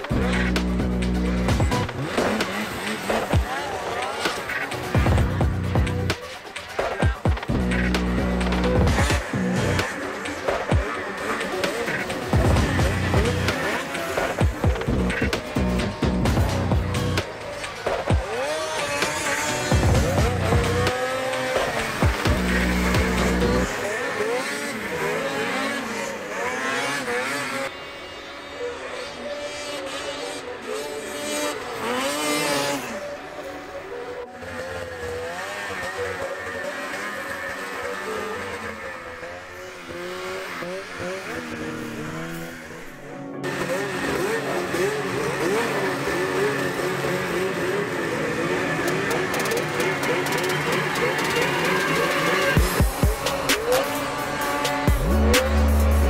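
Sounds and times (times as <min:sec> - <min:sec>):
background music: 0:00.0 - 0:56.0
snowmobile engines revving: 0:00.0 - 0:56.0.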